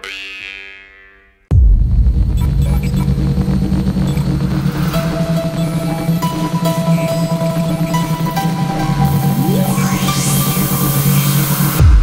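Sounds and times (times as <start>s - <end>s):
electronic music with bass rumble: 1.5s - 12.0s.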